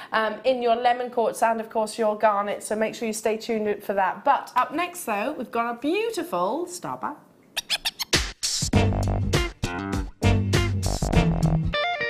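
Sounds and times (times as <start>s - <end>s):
jingle with drums bass and guitar: 8.7s - 12.0s.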